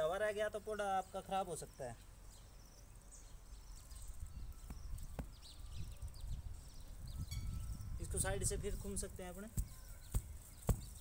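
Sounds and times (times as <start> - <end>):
faint bird chirps: 0.9 - 11.0
hands scuffing soil: 9.2 - 11.0.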